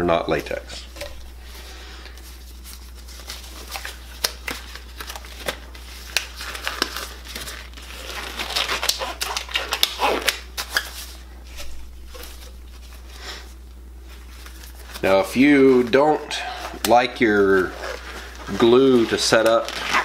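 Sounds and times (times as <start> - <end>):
rubber gloves crinkling and snapping: 0.3 - 20.0.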